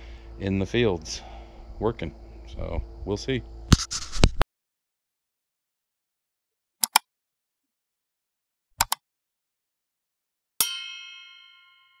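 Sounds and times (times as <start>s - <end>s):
bell ding: 10.6s - 12.0s.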